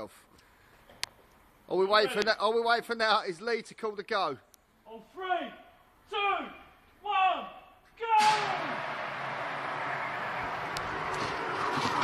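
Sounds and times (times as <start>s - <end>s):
person shouting: 6.2s - 8.8s.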